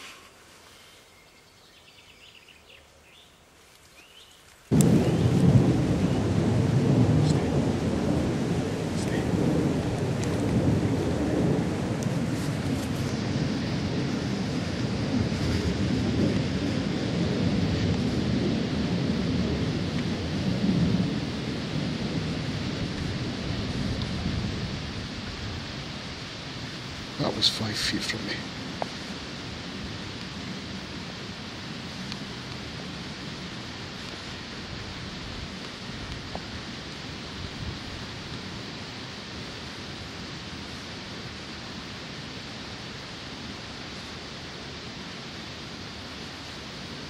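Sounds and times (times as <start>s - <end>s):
wind buffeting microphone: 4.7s - 39.2s.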